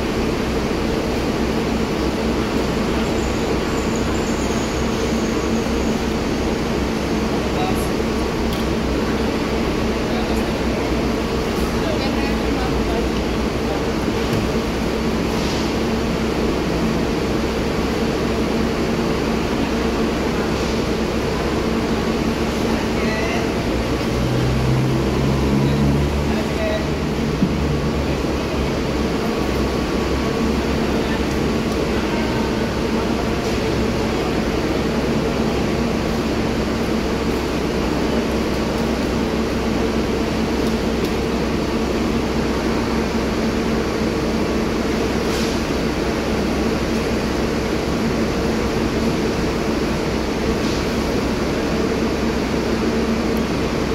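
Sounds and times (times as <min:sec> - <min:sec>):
bus engine idling: 0:00.0 - 0:53.9
constant hum: 0:00.0 - 0:53.9.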